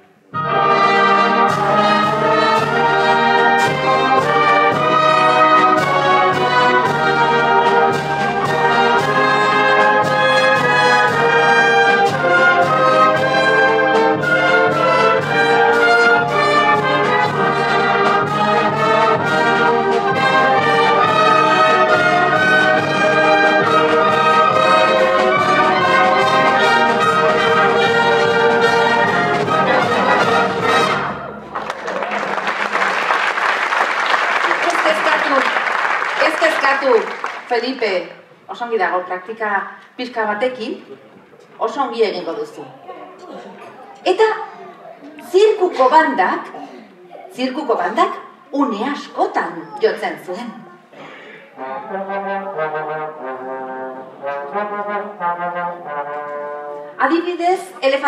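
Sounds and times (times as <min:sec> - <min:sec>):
concert wind band playing: 0:00.0 - 0:31.6, 0:51.5 - 0:57.2.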